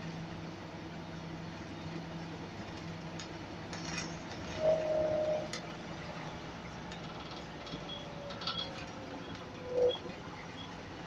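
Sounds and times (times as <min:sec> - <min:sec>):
bus engine drone: 0:00.0 - 0:11.0
whine sliding down in pitch: 0:04.6 - 0:05.5.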